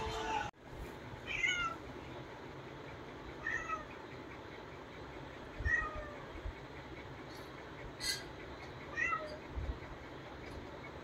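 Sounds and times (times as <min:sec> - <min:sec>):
cat meowing: 0:01.3 - 0:01.8, 0:03.4 - 0:03.9, 0:05.6 - 0:06.3, 0:08.9 - 0:09.4.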